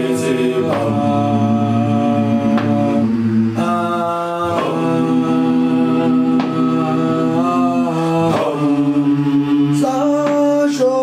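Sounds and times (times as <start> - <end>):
men singing chant in harmony: 0.0 - 11.0.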